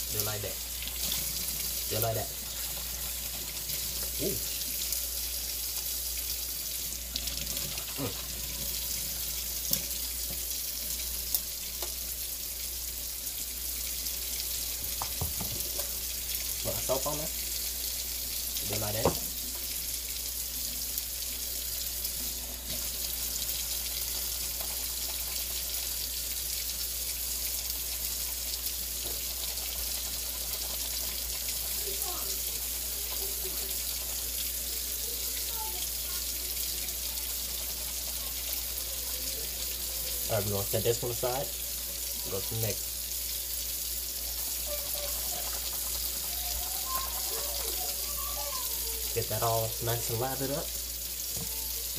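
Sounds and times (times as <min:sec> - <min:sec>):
faucet running into steel sink: 0:00.0 - 0:51.9.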